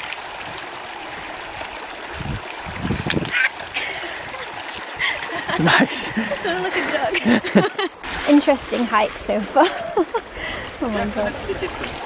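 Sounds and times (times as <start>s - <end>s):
stream running over stones: 0.0s - 12.0s.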